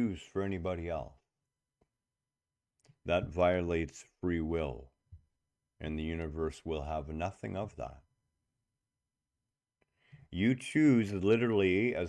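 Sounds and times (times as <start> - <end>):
man speaking: 0.0 - 1.3, 3.0 - 5.0, 5.8 - 8.1, 10.3 - 12.0.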